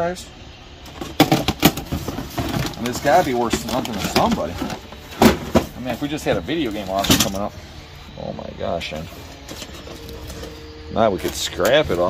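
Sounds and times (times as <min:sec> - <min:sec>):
steady hum-like tone: 0:00.0 - 0:12.0.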